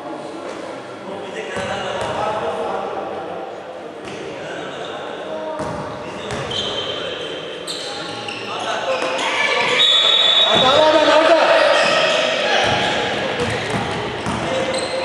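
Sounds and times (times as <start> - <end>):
players and spectators voices: 0.0 - 15.0
basketball bouncing on court: 5.6 - 6.5, 12.6 - 15.0.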